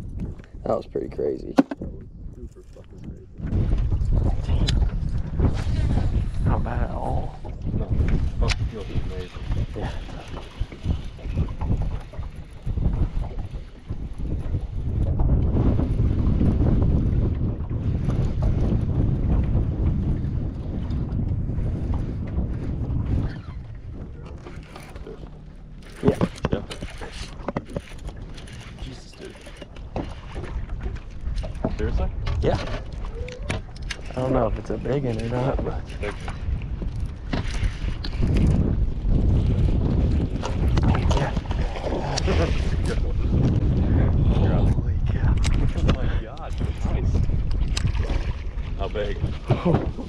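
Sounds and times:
wind buffeting microphone: 0.0 - 50.0
sharp knock: 1.6 - 1.8.

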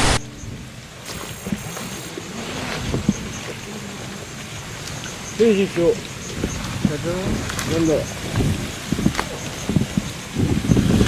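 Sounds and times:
tv static burst: 0.0 - 2.1
outdoor night ambience hiss: 0.0 - 11.0
wind noise on microphone: 0.0 - 11.0.

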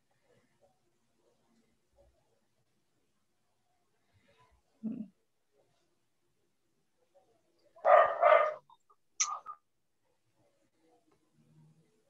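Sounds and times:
dog barking: 7.8 - 8.7.

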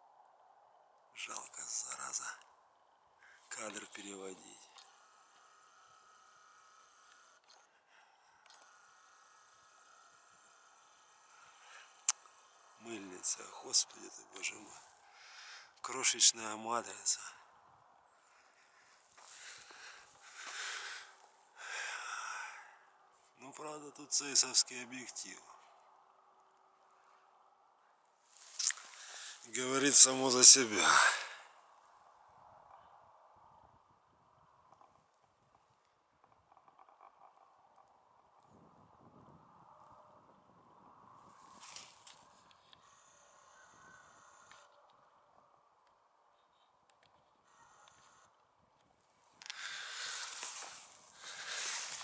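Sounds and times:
man's voice: 29.4 - 31.3
faint steady hiss: 49.0 - 52.0.

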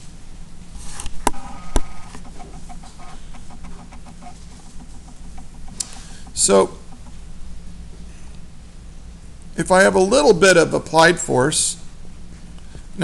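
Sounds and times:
light taps: 2.1 - 7.2.

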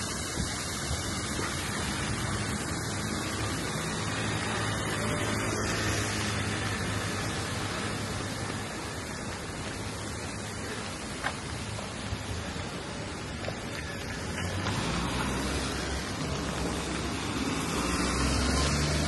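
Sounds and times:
rain on wet street: 0.0 - 19.0.

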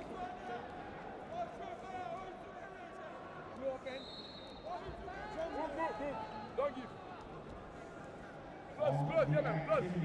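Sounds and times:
crowd murmur in a hall: 0.0 - 10.0.

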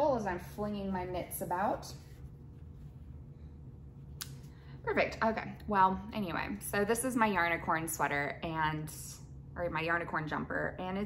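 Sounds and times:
woman's voice: 0.0 - 2.0, 4.8 - 11.0.

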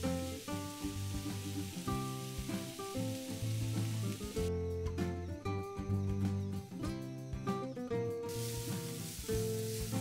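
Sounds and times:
vegetables sizzling in oil: 0.0 - 4.5, 8.3 - 10.0
background music: 0.0 - 10.0.

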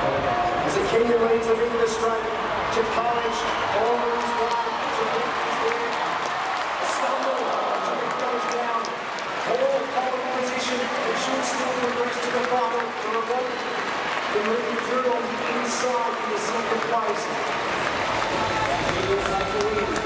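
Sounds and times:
crowd cheering and applauding: 0.0 - 20.0
announcer talking over loudspeaker: 6.8 - 13.6, 14.3 - 17.4, 18.7 - 20.0.

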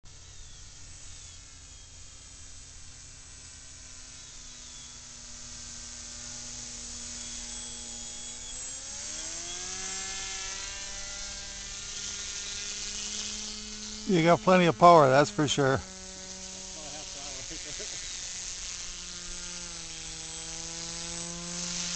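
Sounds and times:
electric motor and propeller whining: 0.1 - 21.9.

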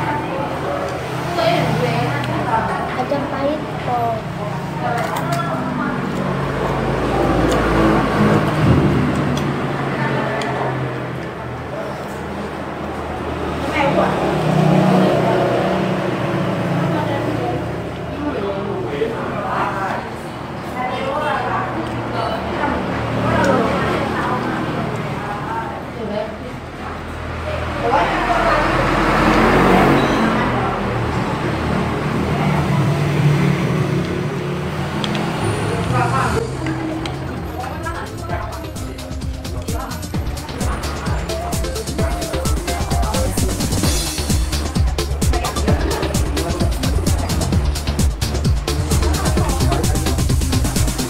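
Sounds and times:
indistinct voices talking: 0.0 - 51.0
passing road traffic: 0.0 - 51.0
background voices: 27.9 - 51.0.

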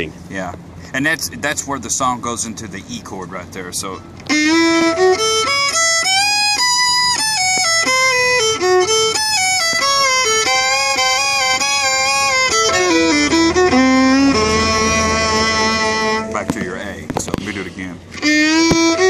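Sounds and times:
solo fiddle playing: 3.9 - 17.0, 18.0 - 19.0.

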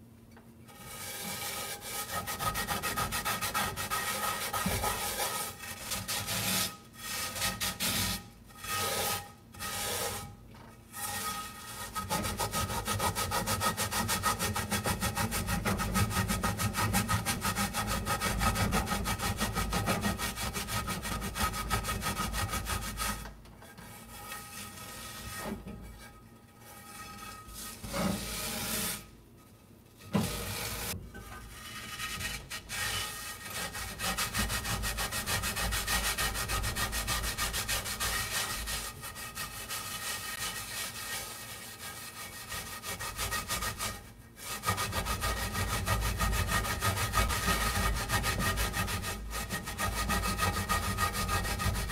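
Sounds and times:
salt scrubbing a skillet: 30.2 - 51.9.

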